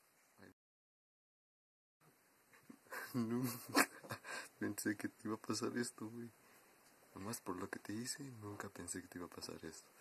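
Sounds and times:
faint hiss: 2.0 - 10.0
person speaking: 3.0 - 6.4.

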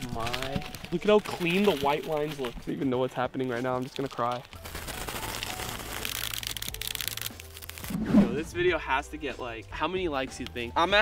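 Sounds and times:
masking tape peeling off plastic: 0.0 - 2.7, 3.8 - 8.0
background music with bass: 6.5 - 11.0.

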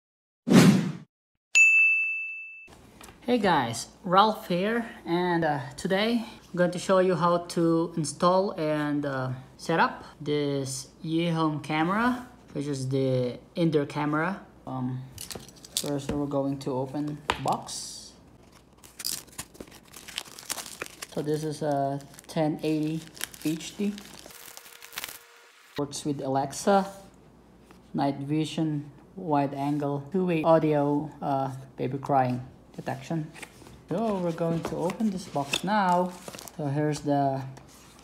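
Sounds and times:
bright bell-like ding: 1.6 - 2.7
plastic wrap crinkling: 18.4 - 25.3, 34.0 - 36.7
knife cutting plastic wrap: 18.5 - 25.3.

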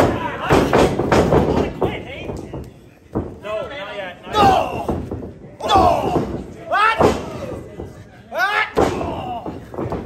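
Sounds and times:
wrestlers yelling: 4.2 - 5.0, 5.6 - 7.7, 8.3 - 9.6.

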